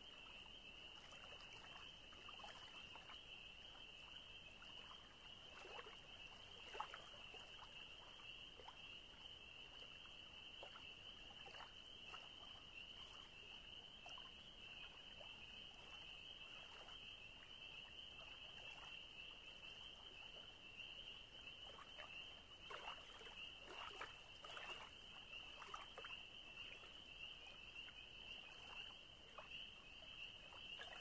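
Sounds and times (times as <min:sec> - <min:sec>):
small waves lapping on shore: 0:22.6 - 0:26.1.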